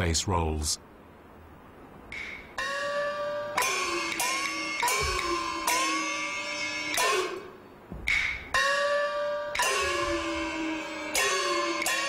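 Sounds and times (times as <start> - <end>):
opera gongs struck: 2.6 - 7.6, 8.6 - 12.0.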